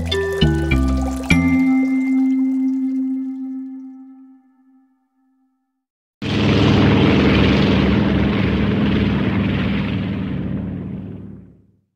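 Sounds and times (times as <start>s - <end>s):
propeller airplane engine: 6.2s - 11.9s.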